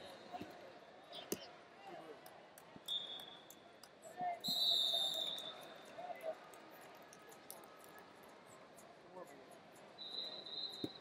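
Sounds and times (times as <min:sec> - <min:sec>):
high steady whistle: 0:02.9 - 0:03.4, 0:04.4 - 0:05.6, 0:10.0 - 0:11.0.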